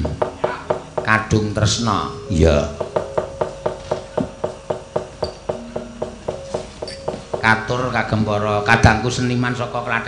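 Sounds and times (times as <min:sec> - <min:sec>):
gamelan percussion: 0:02.0 - 0:09.4.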